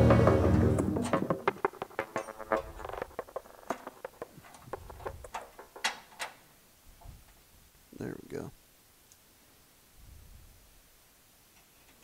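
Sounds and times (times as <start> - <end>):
music: 0.0 - 3.0.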